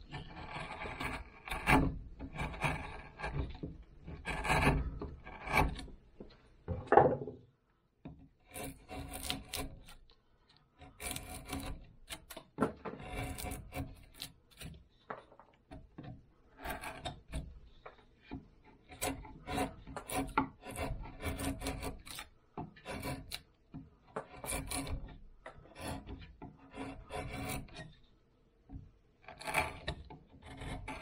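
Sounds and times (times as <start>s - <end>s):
knock: 6.7s - 7.4s
knife scraping bark: 8.4s - 12.4s, 13.0s - 14.8s, 18.8s - 23.5s, 24.2s - 27.9s.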